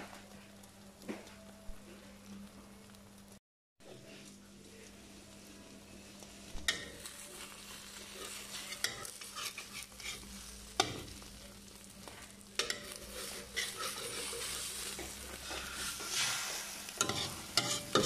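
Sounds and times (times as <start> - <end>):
food sizzling in a wok: 0.0 - 18.0
metal spatula scraping a pan: 6.7 - 11.3, 12.6 - 18.0.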